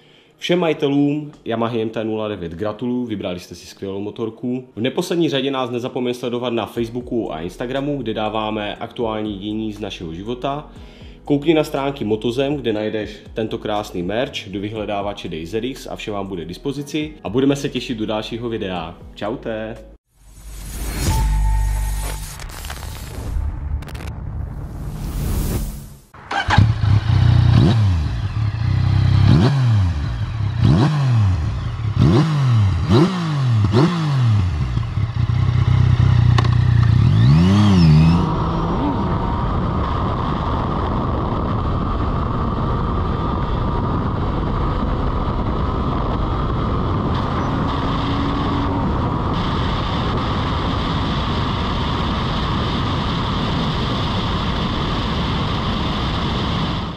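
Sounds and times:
motorcycle engine accelerating: 0:26.2 - 0:56.9
wind noise at high speed: 0:34.6 - 0:56.9.

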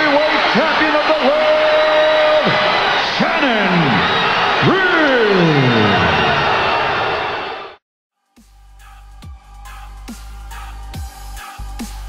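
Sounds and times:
arena crowd noise: 0:00.0 - 0:07.8
announcer calling out: 0:03.2 - 0:06.2.

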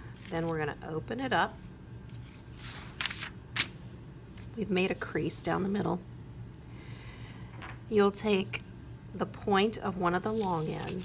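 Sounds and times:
paper crackling: 0:02.1 - 0:04.6, 0:10.3 - 0:11.0
paper rustling: 0:02.1 - 0:04.6, 0:10.3 - 0:11.0.

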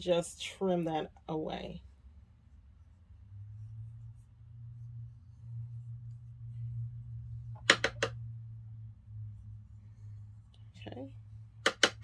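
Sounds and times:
low hum: 0:00.1 - 0:12.0.

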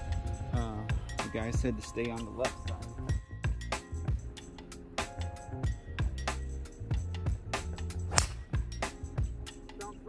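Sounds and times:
music with steady beat: 0:00.0 - 0:10.0
golf club striking ball: 0:08.0 - 0:08.6.

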